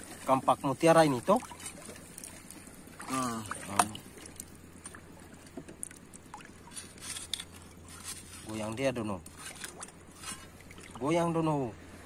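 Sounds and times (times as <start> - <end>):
small splash: 0.0 - 7.0
low steady hum: 0.0 - 12.0
seawater sloshing and lapping: 0.0 - 12.0.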